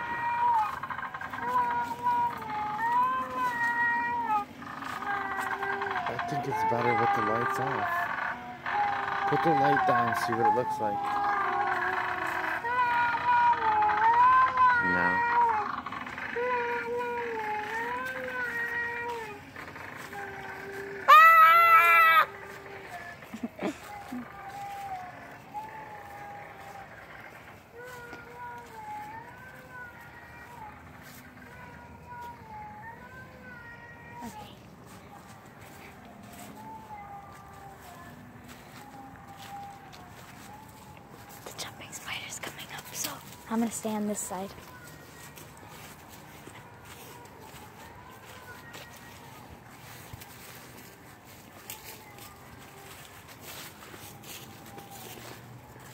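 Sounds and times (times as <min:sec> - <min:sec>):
girl singing slow tune: 0:00.0 - 0:07.4, 0:15.6 - 0:55.9
loud shrill scream: 0:21.0 - 0:22.4.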